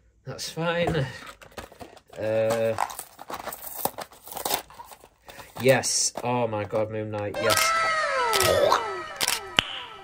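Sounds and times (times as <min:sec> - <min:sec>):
cardboard box tearing and crinkling: 0:01.8 - 0:05.6.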